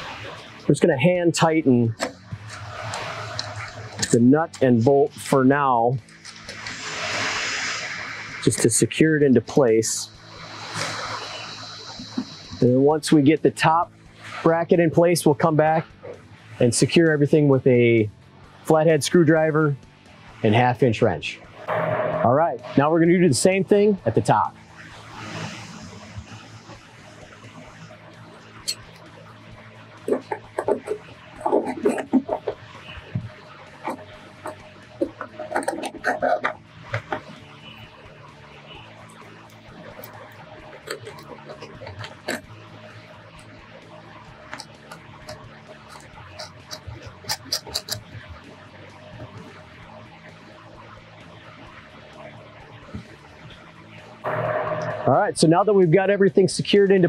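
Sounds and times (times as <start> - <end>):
faint background music: 0.0 - 57.0.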